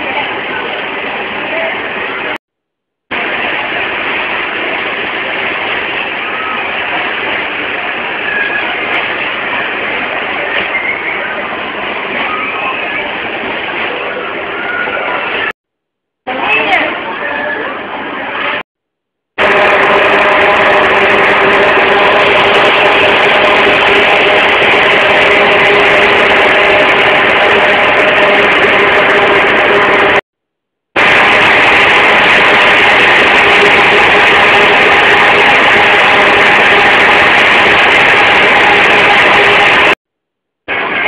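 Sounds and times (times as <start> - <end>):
loud mechanical drone: 19.4 - 30.2, 31.0 - 40.0.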